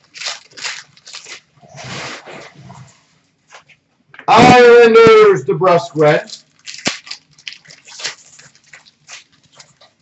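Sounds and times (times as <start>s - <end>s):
trading cards rustling: 5.7s - 10.0s.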